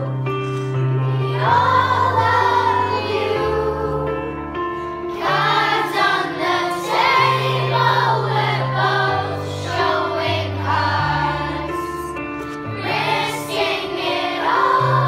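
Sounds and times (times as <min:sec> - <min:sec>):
children's choir singing: 0:00.9 - 0:04.5, 0:05.1 - 0:15.0.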